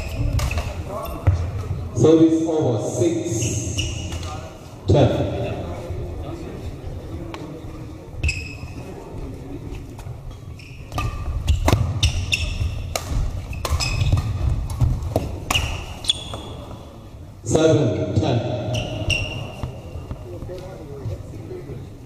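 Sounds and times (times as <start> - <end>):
shoes squeaking on court floor: 0.0 - 1.7, 3.3 - 4.6, 8.2 - 8.9, 9.7 - 17.0, 18.5 - 21.2
rackets hitting shuttlecock: 0.1 - 1.4, 10.9 - 16.7.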